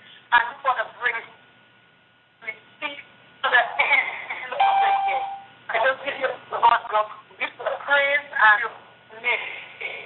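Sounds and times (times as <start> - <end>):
electronic chime: 4.6 - 5.5.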